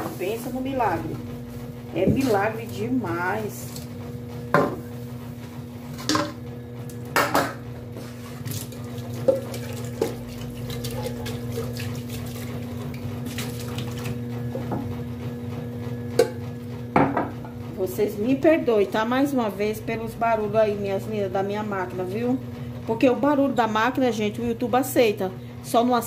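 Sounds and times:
washing machine humming: 0:00.0 - 0:26.0
sponge scrubbing pan: 0:08.0 - 0:14.2.

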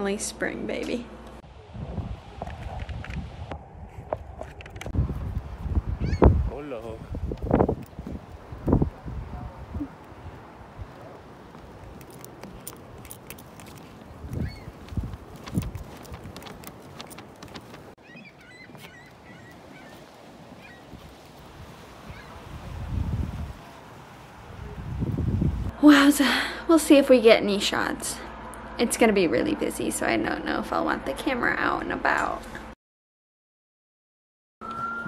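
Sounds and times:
wind buffeting microphone: 0:01.5 - 0:18.0, 0:18.6 - 0:25.8
honking bird calls: 0:06.0 - 0:06.3, 0:18.0 - 0:20.9
footsteps on boards: 0:11.4 - 0:18.0.

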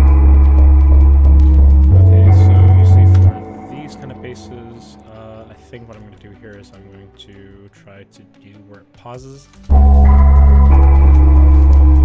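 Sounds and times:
deep synth bass: 0:00.0 - 0:05.5, 0:09.7 - 0:12.0
sampled melody loop: 0:00.0 - 0:12.0.

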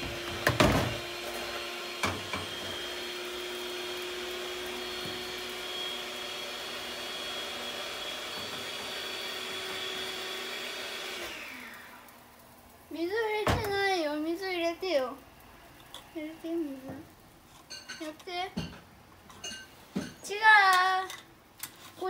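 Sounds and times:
extractor fan hum with whine: 0:00.0 - 0:17.5.

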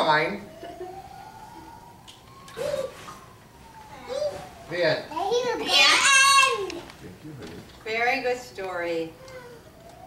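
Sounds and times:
hooting vocal ooh: 0:00.5 - 0:04.5.

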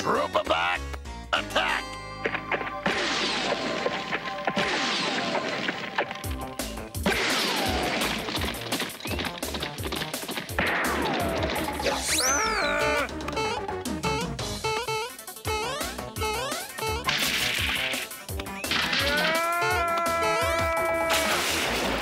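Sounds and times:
cartoon action music: 0:00.0 - 0:22.0
crash and whack effects: 0:02.3 - 0:12.2, 0:17.1 - 0:19.4, 0:21.1 - 0:22.0.

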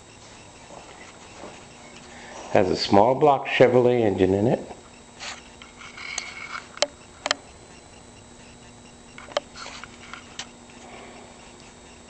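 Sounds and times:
faint steady hum: 0:00.0 - 0:12.0
sharp clicks: 0:05.6 - 0:09.5.

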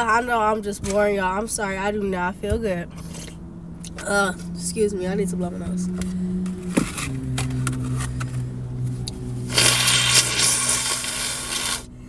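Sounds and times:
person blowing nose into tissue: 0:09.5 - 0:11.9.

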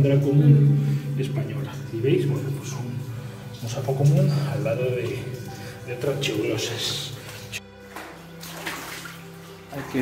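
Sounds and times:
background music with low notes: 0:00.0 - 0:10.0
footsteps wading through water: 0:02.4 - 0:10.0.

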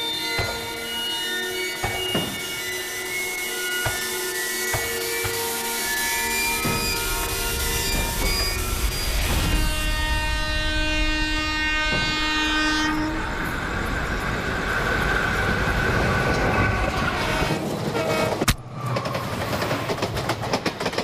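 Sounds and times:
train horn: 0:00.0 - 0:13.6, 0:16.3 - 0:18.5
passing train rumble: 0:00.0 - 0:21.0.

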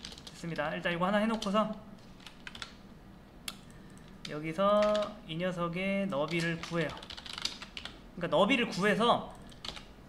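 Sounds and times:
computer keyboard keystrokes: 0:00.0 - 0:00.4, 0:02.2 - 0:02.8, 0:03.5 - 0:05.2, 0:06.2 - 0:08.0, 0:09.4 - 0:09.9.

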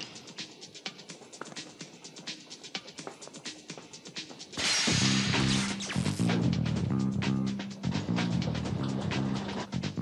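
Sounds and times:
heavy music with low held notes: 0:00.0 - 0:10.0
cartoon music with ticking beat: 0:05.3 - 0:10.0.

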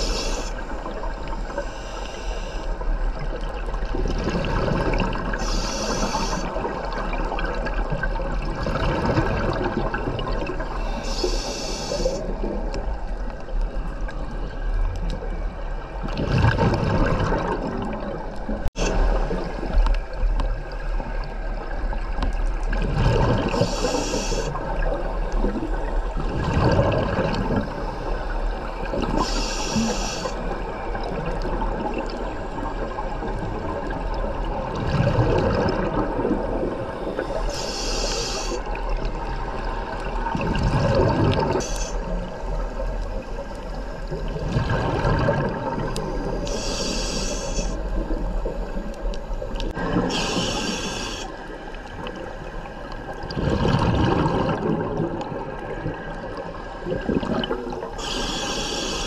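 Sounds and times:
regulator hissing inhale: 0:00.0 - 0:03.0, 0:05.3 - 0:06.7, 0:10.7 - 0:12.4, 0:23.5 - 0:24.6, 0:27.8 - 0:30.6, 0:37.0 - 0:38.8, 0:41.6 - 0:42.1, 0:46.0 - 0:48.0, 0:50.0 - 0:52.7, 0:58.0 - 0:59.0
underwater water noise: 0:00.0 - 0:59.0
gurgling exhaled bubbles: 0:03.0 - 0:13.4, 0:15.9 - 0:38.0, 0:38.6 - 0:58.6.

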